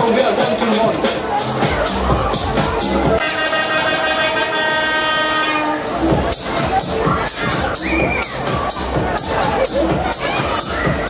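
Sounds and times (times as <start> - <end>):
bass beat: 0.0 - 3.2, 5.8 - 11.0
steady horn-like tone: 3.2 - 6.1.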